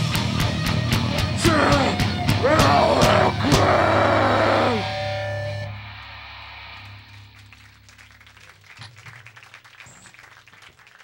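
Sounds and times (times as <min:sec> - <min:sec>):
scattered clapping: 0:06.8 - 0:11.0.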